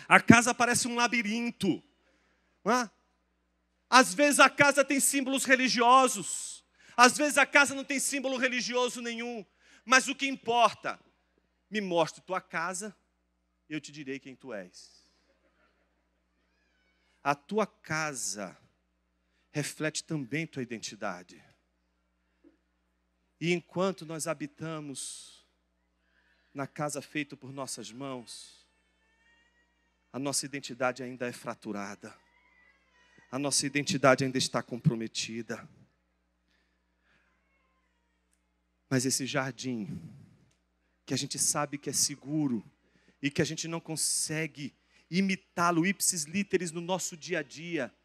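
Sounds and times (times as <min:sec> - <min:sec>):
man's amplified speech: 0:00.0 - 0:01.9, 0:02.7 - 0:03.0, 0:03.9 - 0:11.0, 0:11.7 - 0:13.0, 0:13.7 - 0:15.0, 0:17.3 - 0:18.6, 0:19.6 - 0:21.4, 0:23.4 - 0:25.4, 0:26.6 - 0:28.6, 0:30.2 - 0:32.2, 0:33.3 - 0:35.7, 0:38.9 - 0:40.1, 0:41.1 - 0:48.0
person speaking: 0:03.9 - 0:11.0.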